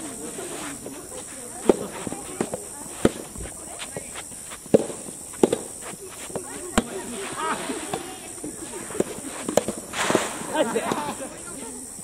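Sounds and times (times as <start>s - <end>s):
racket hitting ball: 4.7s - 7.0s, 8.9s - 11.1s.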